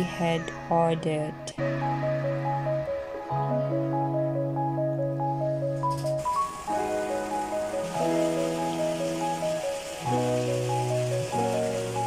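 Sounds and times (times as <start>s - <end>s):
held chords: 0.0s - 12.0s
steady hiss: 5.9s - 12.0s.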